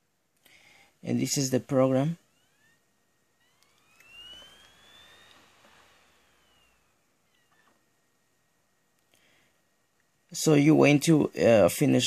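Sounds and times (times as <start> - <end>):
disc drive whine: 1.1 - 9.8.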